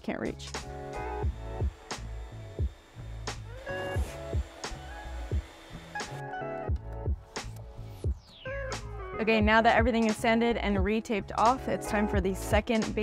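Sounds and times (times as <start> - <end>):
background music with beat: 2.6 - 13.0.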